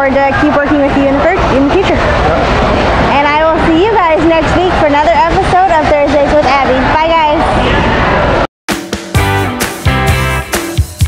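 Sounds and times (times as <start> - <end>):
people talking: 0.0 - 2.4, 3.0 - 7.8.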